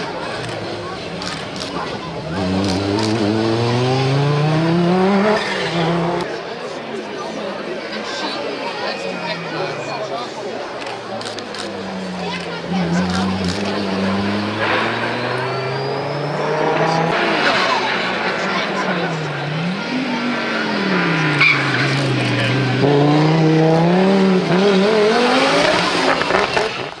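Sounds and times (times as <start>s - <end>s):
rally car engines revving: 0.0s - 7.1s, 8.8s - 27.0s.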